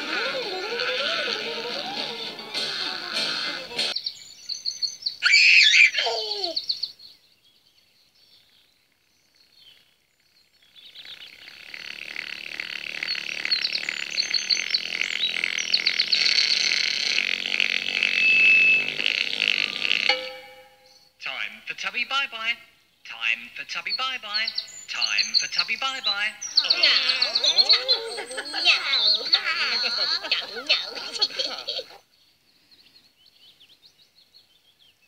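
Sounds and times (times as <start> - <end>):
falling sliding musical note: 18.0 - 20.8.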